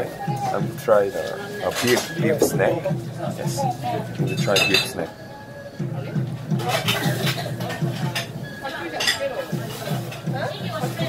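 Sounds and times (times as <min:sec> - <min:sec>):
people talking: 0:00.0 - 0:05.2, 0:05.8 - 0:11.0
dishes and cutlery clinking: 0:01.2 - 0:02.7, 0:04.2 - 0:05.1, 0:06.5 - 0:11.0.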